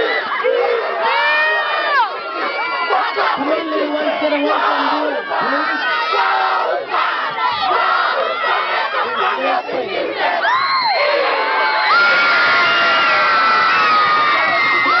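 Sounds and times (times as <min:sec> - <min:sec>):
pupils shouting haka calls: 0:00.0 - 0:10.4
loud continuous cheering: 0:00.0 - 0:15.0.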